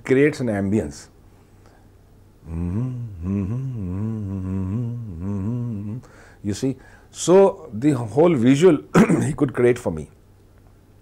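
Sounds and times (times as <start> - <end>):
man humming a tune: 2.4 - 6.2.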